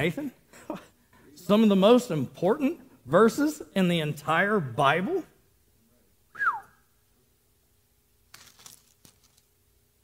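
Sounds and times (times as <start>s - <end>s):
whistle gliding down in pitch: 6.3s - 6.8s.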